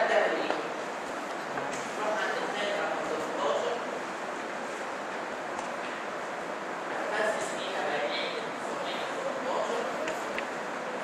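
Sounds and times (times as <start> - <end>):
microphone hiss: 0.0 - 11.0
room noise: 0.0 - 11.0.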